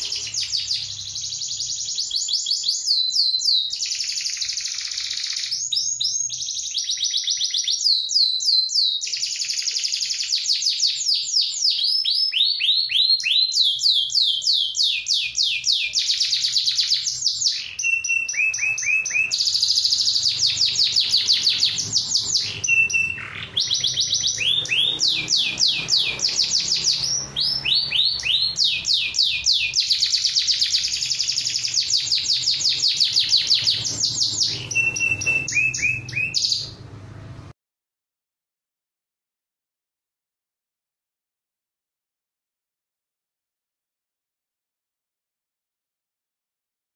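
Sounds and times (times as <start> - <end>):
canary singing trilled song: 0.0 - 37.4.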